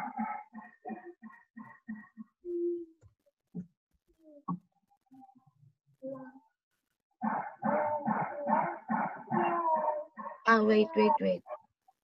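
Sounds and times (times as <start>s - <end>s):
dog barking: 7.2s - 10.6s.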